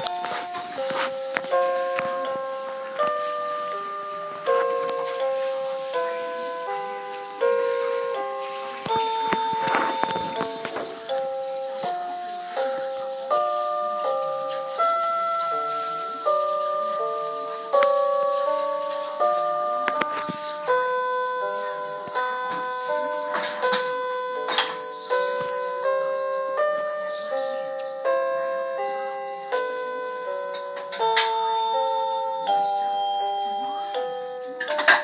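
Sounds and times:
toy electronic keyboard melody: 0:00.0 - 0:35.0.

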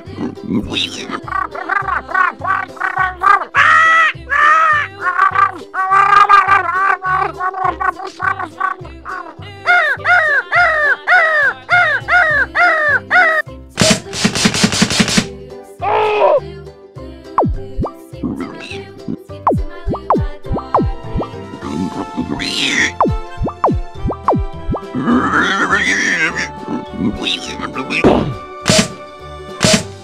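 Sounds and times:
squeaky cartoon gibberish chatter: 0:00.0 - 0:13.4, 0:18.3 - 0:19.3, 0:20.0 - 0:28.2
music track: 0:17.3 - 0:30.0.

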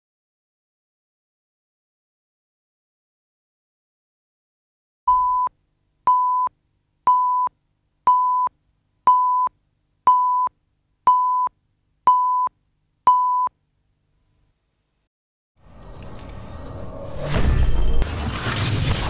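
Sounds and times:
short countdown beeps: 0:05.1 - 0:05.5, 0:06.1 - 0:06.5, 0:07.1 - 0:07.5, 0:08.1 - 0:08.5, 0:09.1 - 0:09.5, 0:10.1 - 0:10.5, 0:11.1 - 0:11.5, 0:12.1 - 0:12.5, 0:13.1 - 0:13.5.

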